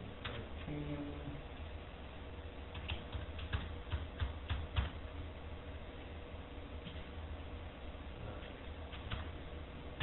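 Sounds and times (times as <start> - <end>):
low electrical hum: 0.0 - 10.0
keyboard typing clicks: 2.7 - 5.0, 8.9 - 9.3.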